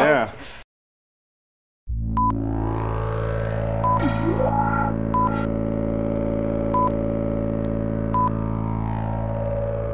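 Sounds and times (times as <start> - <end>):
synthesizer drone: 1.9 - 9.9.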